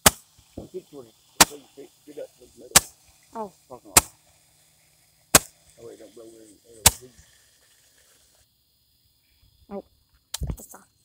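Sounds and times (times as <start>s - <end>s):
firework bangs: 0.0s - 8.4s
people's voices: 0.6s - 4.2s, 5.4s - 7.2s.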